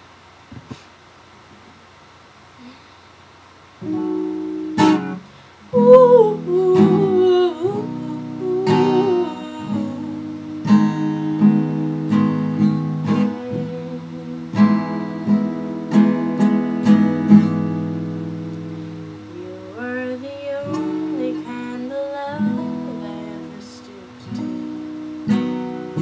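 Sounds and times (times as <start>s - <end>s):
acoustic guitar strumming chords: 3.8s - 26.0s.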